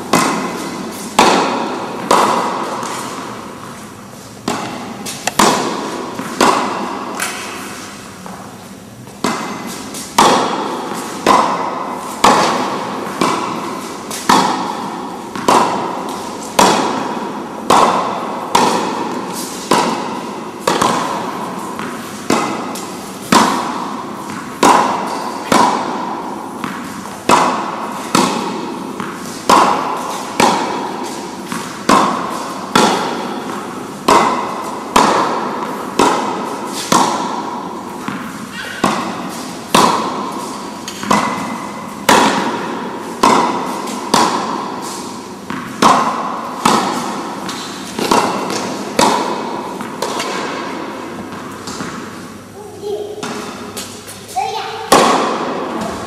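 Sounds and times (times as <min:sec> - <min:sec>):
tennis ball hit by racket: 0:00.0 - 0:56.0.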